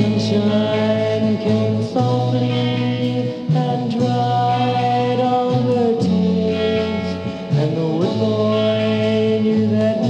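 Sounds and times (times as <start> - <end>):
garage rock band sustained chords: 0.0 - 10.0.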